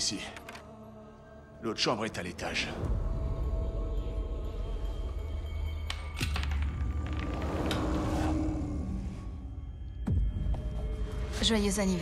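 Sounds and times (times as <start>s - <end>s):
low rumbling drone: 2.9s - 11.2s
rising swell: 6.9s - 9.9s.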